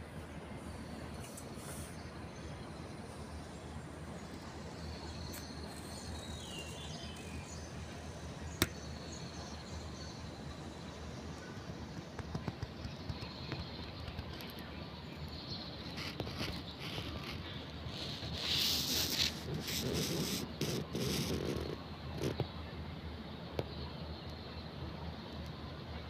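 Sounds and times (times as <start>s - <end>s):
hissing rustle: 1.2s - 2.0s, 15.8s - 22.4s.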